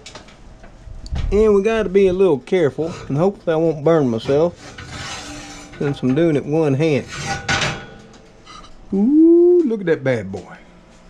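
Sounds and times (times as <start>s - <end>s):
skillet scraping on metal rack: 2.8s - 8.8s.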